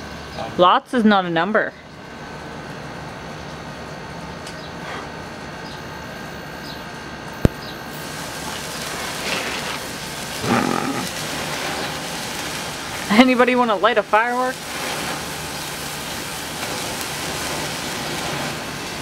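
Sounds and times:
sparklers fizzing: 7.4 - 19.0.

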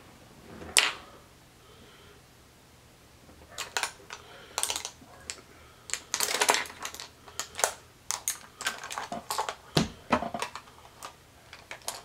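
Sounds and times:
makeup items clicking and rattling: 3.5 - 12.0.

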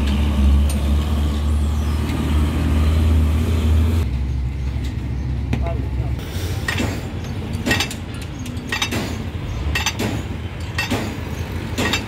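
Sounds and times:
diesel truck engine rumbling: 0.0 - 12.0.

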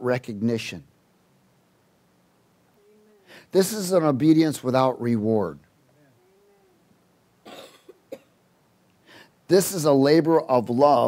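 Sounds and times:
person coughing: 7.5 - 8.3.

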